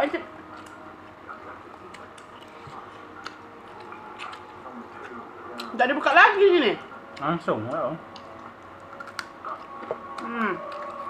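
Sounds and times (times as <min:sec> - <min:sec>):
person chewing food: 0:00.5 - 0:05.7, 0:07.1 - 0:11.0.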